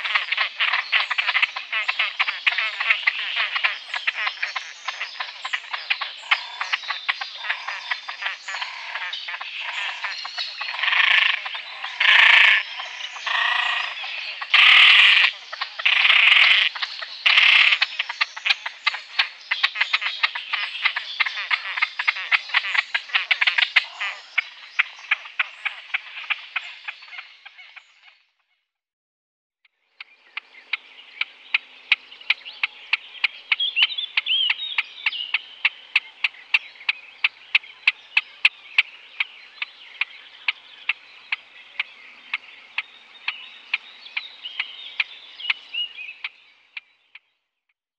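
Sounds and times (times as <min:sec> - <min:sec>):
grebe harsh croaking calls: 0:00.0 - 0:27.7.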